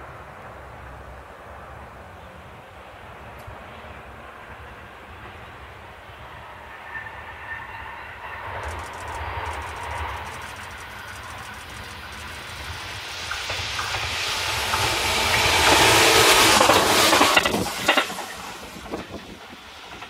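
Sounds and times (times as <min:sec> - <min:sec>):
electric train rumble and rail noise: 0:00.0 - 0:20.0.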